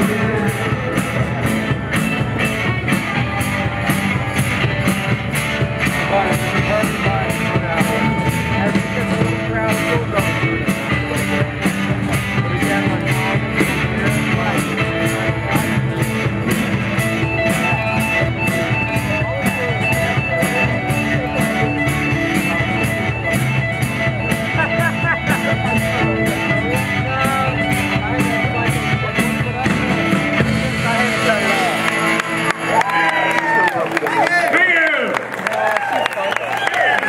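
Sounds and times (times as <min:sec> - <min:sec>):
cymbals keeping a steady beat: 0:00.0 - 0:33.6
live rock band playing: 0:00.0 - 0:37.0.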